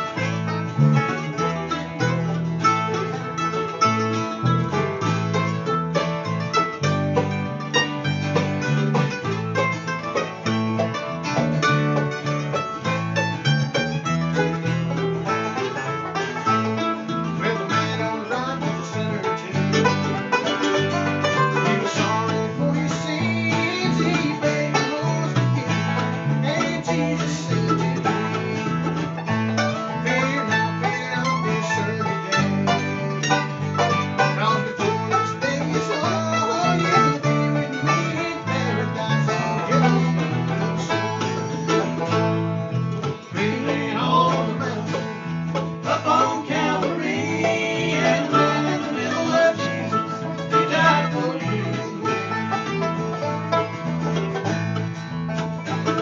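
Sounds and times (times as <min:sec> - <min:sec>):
acoustic guitar: 0:00.0 - 0:56.0
banjo picking: 0:00.0 - 0:56.0
electric bass line: 0:00.0 - 0:56.0
mandolin picking: 0:00.0 - 0:56.0.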